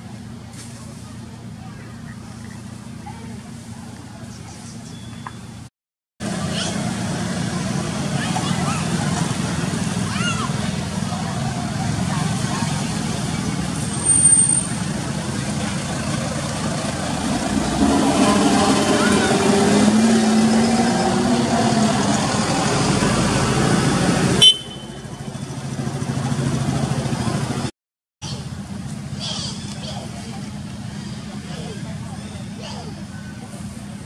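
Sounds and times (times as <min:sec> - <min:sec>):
people's voices: 0:00.0 - 0:05.3, 0:06.2 - 0:23.4, 0:26.0 - 0:34.0
road traffic: 0:00.0 - 0:34.0.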